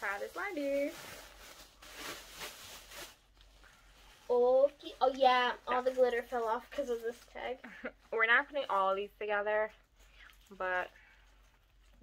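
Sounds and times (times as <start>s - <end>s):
faint rustling of small objects: 0.0s - 12.0s.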